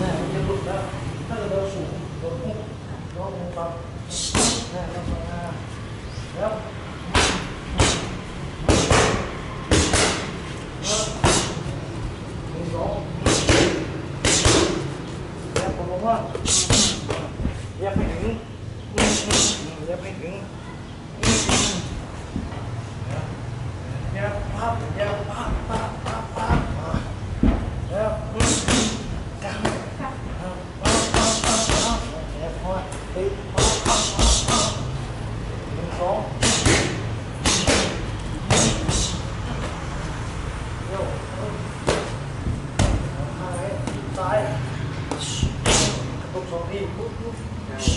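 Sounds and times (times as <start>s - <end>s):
boxing gloves punching pad: 4.2s - 4.7s, 7.1s - 11.6s, 13.2s - 14.8s, 16.4s - 17.3s, 19.0s - 19.6s, 21.2s - 21.9s, 28.4s - 29.0s, 30.8s - 32.1s, 33.6s - 34.8s, 36.4s - 39.1s, 41.8s - 42.2s, 45.1s - 46.0s
boxing gloves smacking focus mitts: 7.2s - 10.4s, 13.2s - 14.8s, 36.4s - 39.8s, 41.8s - 43.1s.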